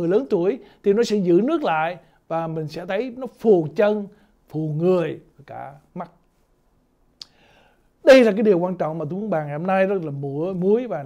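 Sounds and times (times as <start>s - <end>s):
man talking: 0.0s - 6.2s, 8.0s - 11.0s
mouth click: 7.2s - 7.4s
faint breath: 7.3s - 8.0s.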